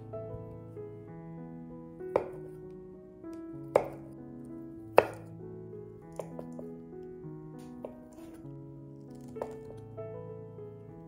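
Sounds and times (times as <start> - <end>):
soft background music: 0.0 - 11.0
knife chopping on wooden board: 2.2 - 2.4, 3.7 - 4.2, 4.9 - 5.3.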